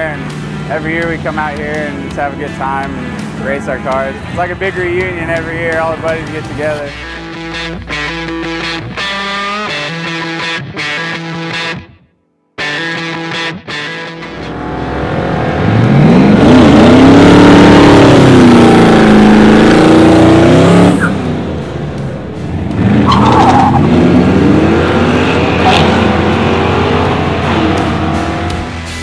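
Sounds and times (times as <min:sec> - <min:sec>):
car engine revving: 0:00.0 - 0:09.9, 0:14.2 - 0:28.9.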